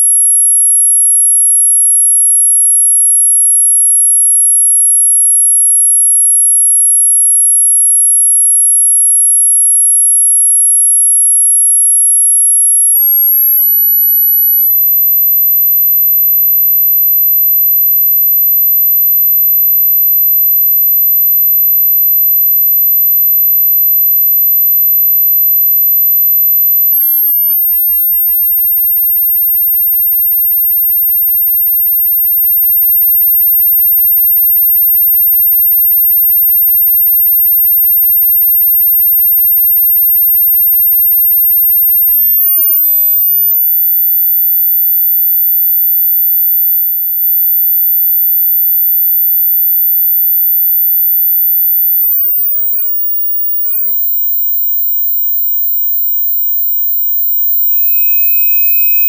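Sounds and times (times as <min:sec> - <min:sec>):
high-pitched sine test tone: 0:00.0 - 0:59.0.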